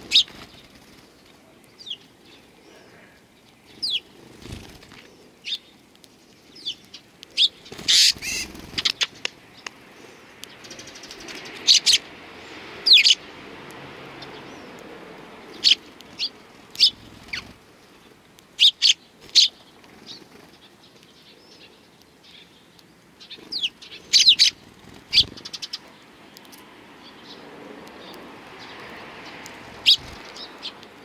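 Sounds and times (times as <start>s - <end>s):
sparrows chirping: 0.0s - 31.0s.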